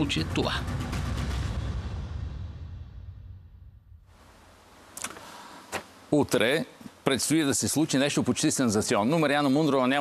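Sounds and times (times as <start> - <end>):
low hiss: 4.0 - 10.0.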